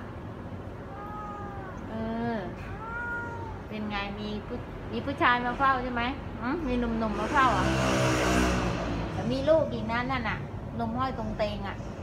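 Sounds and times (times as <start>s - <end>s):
cat meowing: 0.8s - 3.9s.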